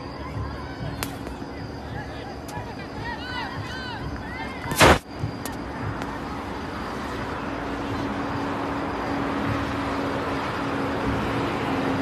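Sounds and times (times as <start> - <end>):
open-air field background noise: 0.0 - 12.0
sharp burst of noise: 4.7 - 5.3.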